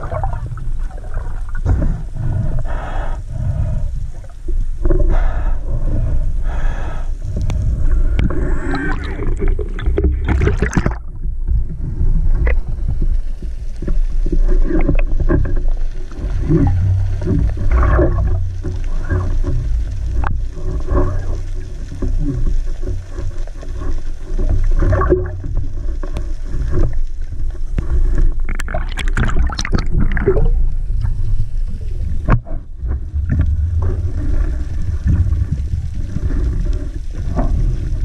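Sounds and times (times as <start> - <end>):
underwater rumble of water: 0.0 - 38.0
sharp clicks and crackles: 12.4 - 38.0.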